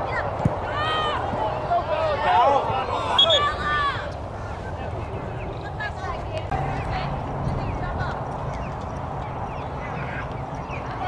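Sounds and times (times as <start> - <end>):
distant voices: 0.0 - 11.0
wind noise on microphone: 5.1 - 11.0.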